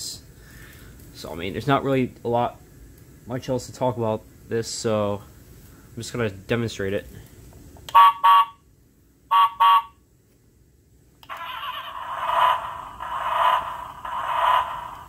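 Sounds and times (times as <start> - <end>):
toy horn honks: 7.9 - 8.6, 9.3 - 10.0.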